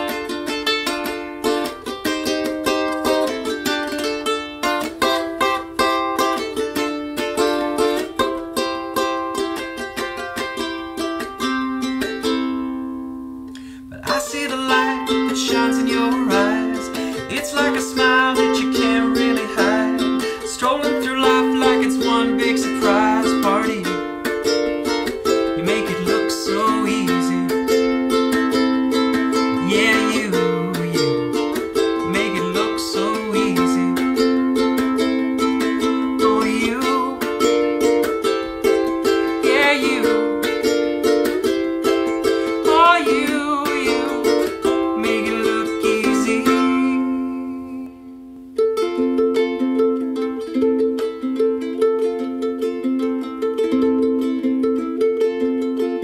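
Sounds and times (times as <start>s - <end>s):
ukulele strumming chords: 0.0s - 56.0s
wordless vocal line: 13.9s - 24.1s, 25.4s - 27.7s, 29.5s - 34.2s, 36.0s - 37.4s, 39.1s - 40.4s, 42.2s - 47.6s
man singing: 13.9s - 40.8s, 41.8s - 48.0s.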